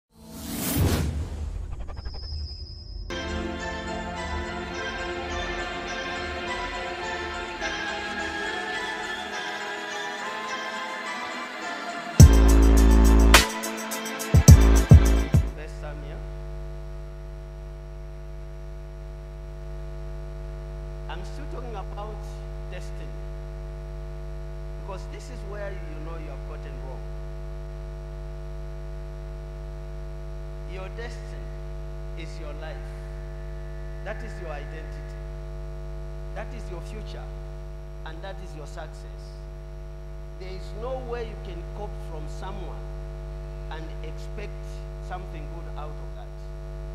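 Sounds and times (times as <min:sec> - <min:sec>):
electrical mains hum: 0:14.5 - 0:46.9.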